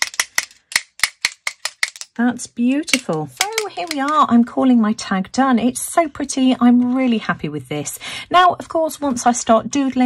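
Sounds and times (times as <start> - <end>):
hard tool tapping clicks: 0.0 - 2.1.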